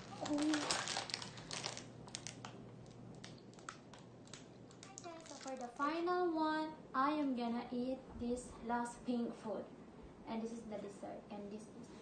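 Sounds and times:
plastic package crinkling: 0.0 - 5.8.

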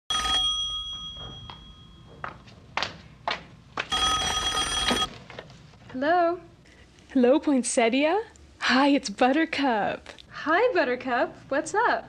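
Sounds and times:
telephone bell ringing: 0.1 - 2.3, 3.9 - 5.1.

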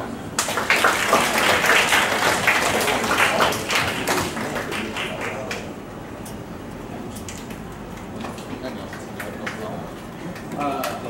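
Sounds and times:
audience clapping: 0.4 - 5.8, 8.0 - 11.0.

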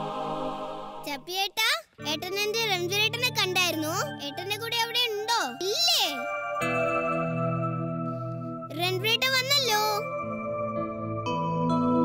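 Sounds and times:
soft background music: 2.0 - 12.0.

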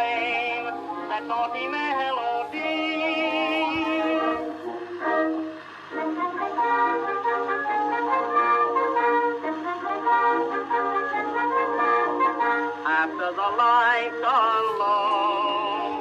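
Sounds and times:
small orchestra with brass and clarinet: 0.0 - 16.0.

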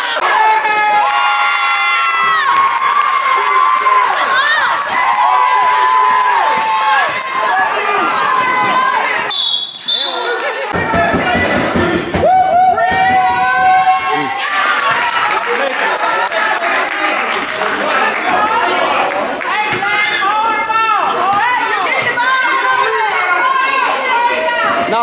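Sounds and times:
crowd yelling and cheering: 0.0 - 25.0.

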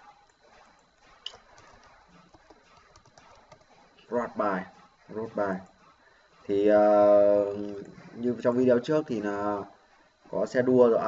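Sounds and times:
computer keyboard typing clicks: 1.2 - 3.7.

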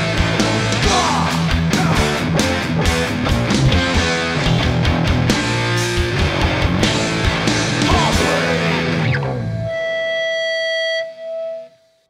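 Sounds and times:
electric guitar feedback: 0.0 - 12.0.

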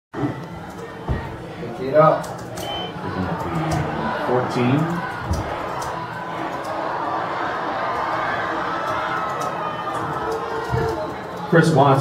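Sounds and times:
crowd cheering and shouting: 0.2 - 12.0.

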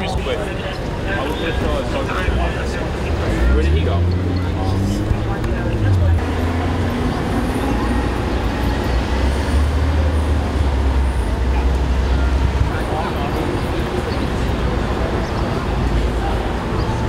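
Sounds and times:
people talking in background: 0.0 - 17.0
street traffic noise: 0.0 - 17.0
vehicle engine low rumble: 2.2 - 17.0.

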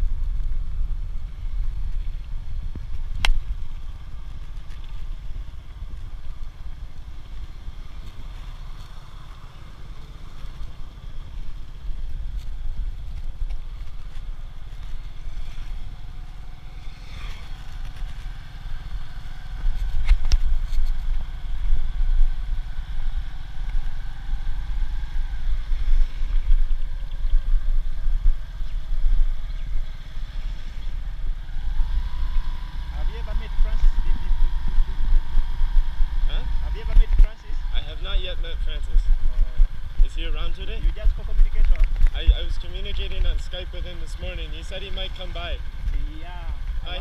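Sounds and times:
small motorcycle engine running: 3.5 - 47.0.

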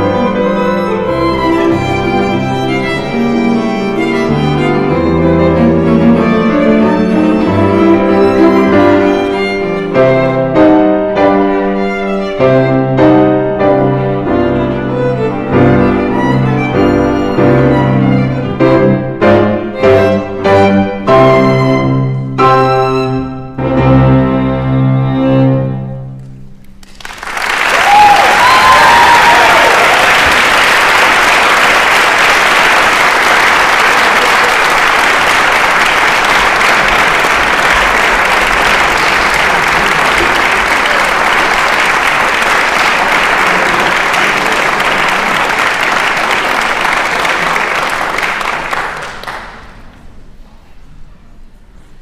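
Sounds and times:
audience applauding: 26.8 - 49.9.

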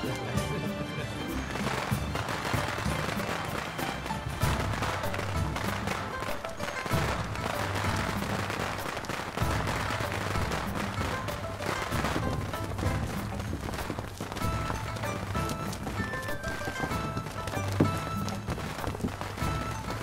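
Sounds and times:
festive music: 0.0 - 20.0
firecrackers crackling: 0.0 - 20.0.

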